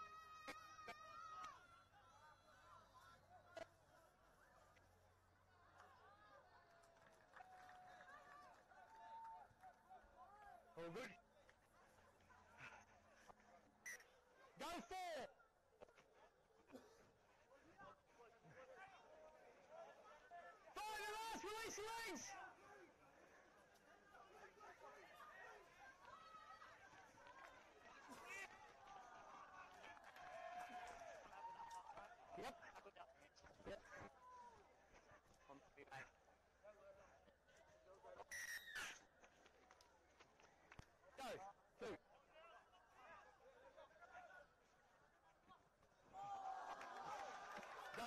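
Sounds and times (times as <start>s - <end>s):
faint calls from players: 38.2s - 39.4s.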